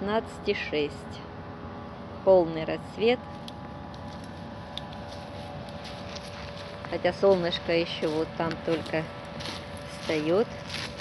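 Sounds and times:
woman speaking: 0:00.0 - 0:01.3, 0:02.2 - 0:03.2, 0:06.9 - 0:09.2, 0:09.9 - 0:10.6
low continuous hum: 0:00.0 - 0:11.0.

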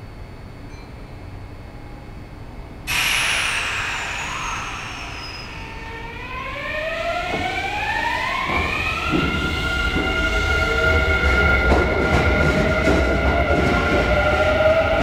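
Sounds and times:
train hiss: 0:02.9 - 0:08.4
high whine: 0:02.9 - 0:09.4
traction motors rising tones: 0:02.9 - 0:10.5.

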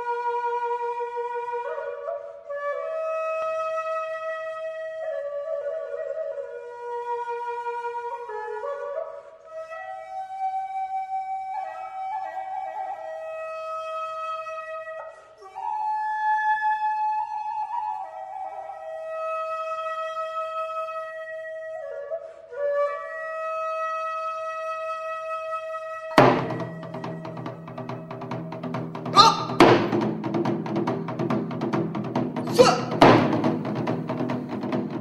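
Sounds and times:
slow solo flute melody: 0:00.0 - 0:30.5.

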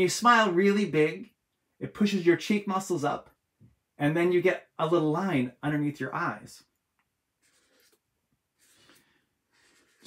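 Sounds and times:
marker scratching on paper: 0:07.4 - 0:08.0, 0:08.6 - 0:10.0.

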